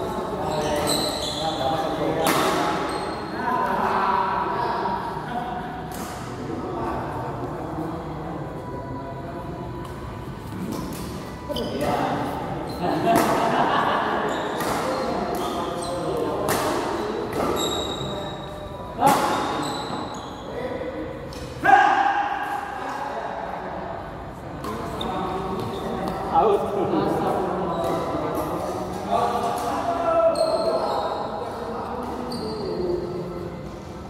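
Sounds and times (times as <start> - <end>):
players' voices: 0.0 - 34.0
shoes squeaking on court: 0.4 - 1.8, 2.5 - 3.3, 10.6 - 12.9, 14.2 - 16.4, 17.3 - 20.6, 24.9 - 26.3, 30.3 - 33.8
rackets hitting shuttlecock: 2.2 - 2.9, 13.0 - 13.5, 14.5 - 17.6, 19.0 - 19.6.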